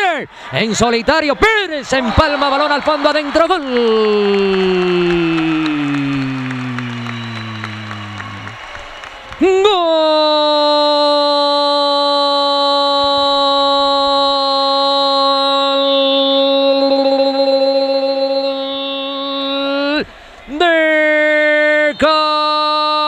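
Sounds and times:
sports commentator shouting: 0.0 - 8.6, 9.4 - 23.0.

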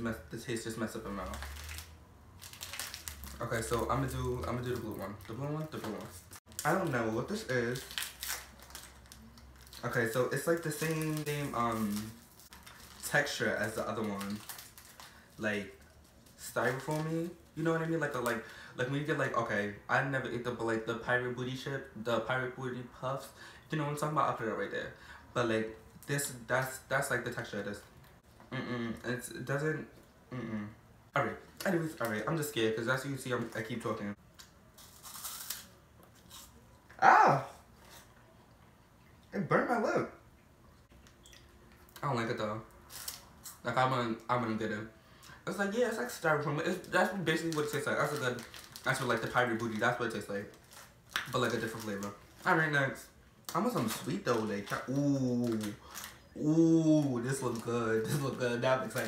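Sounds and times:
plastic wrapper crinkling: 1.0 - 18.5, 34.4 - 36.5, 42.8 - 43.6, 46.0 - 56.3, 57.0 - 59.0
crunching snack: 1.2 - 6.8, 7.7 - 15.2, 34.4 - 36.6.

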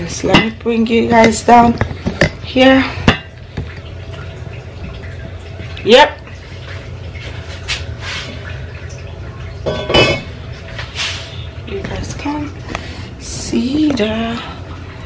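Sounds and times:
pot lids knocking and clinking: 9.6 - 10.3.

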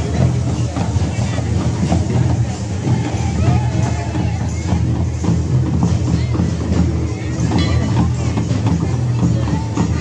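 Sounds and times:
barrel drums beating: 0.0 - 10.0
crowd voices: 0.0 - 10.0.

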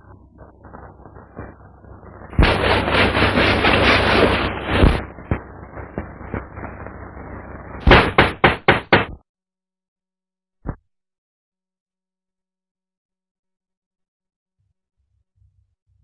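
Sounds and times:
loud rattling clatter: 2.4 - 5.0
heavy thump: 7.8 - 9.2
sharp knocks: 7.8 - 9.2.

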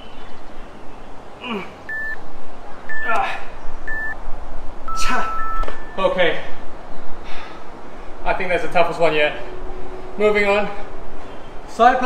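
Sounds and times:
man breathing and grunting: 1.4 - 1.9, 3.0 - 3.6, 7.1 - 8.3
interval timer beeps: 1.9 - 2.2, 2.9 - 3.2, 3.8 - 4.2, 4.9 - 6.0.

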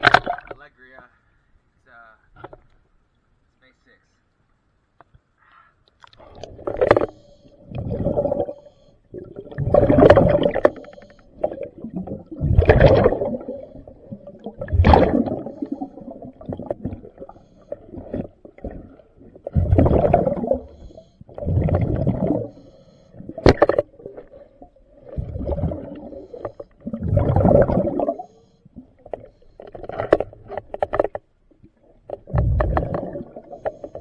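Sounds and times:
faint steady hum: 0.0 - 34.0
bubbly underwater exhalations: 6.0 - 34.0.

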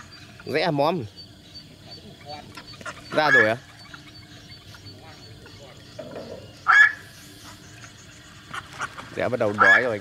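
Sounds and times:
faint bird chirps: 0.0 - 9.0.

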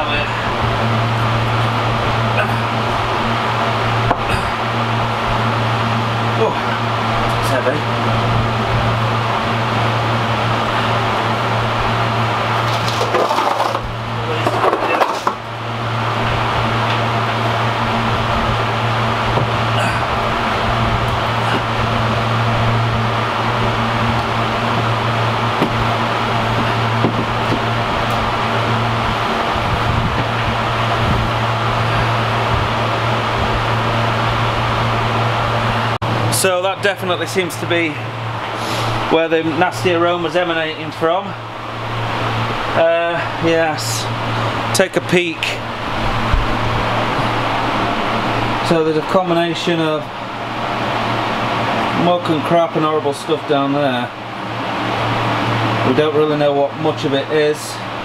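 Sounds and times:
electric fan running: 0.0 - 58.0
scraping and knocking: 12.6 - 15.4.

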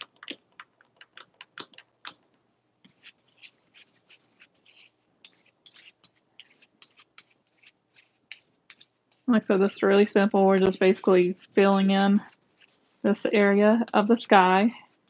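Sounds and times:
paintbrush strokes on canvas: 2.9 - 15.0.

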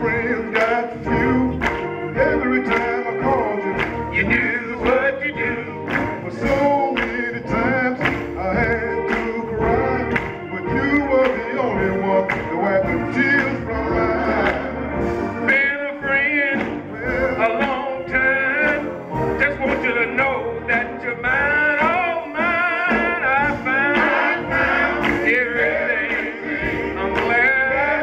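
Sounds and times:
drawbar organ: 0.0 - 28.0
drum kit: 0.0 - 28.0
man singing gospel: 0.0 - 28.0.

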